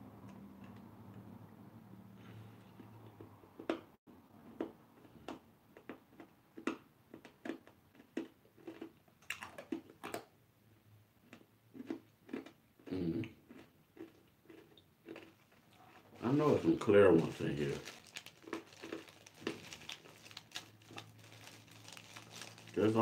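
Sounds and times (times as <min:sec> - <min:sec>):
person chewing: 0:04.6 - 0:10.3, 0:11.2 - 0:16.2, 0:17.8 - 0:22.8.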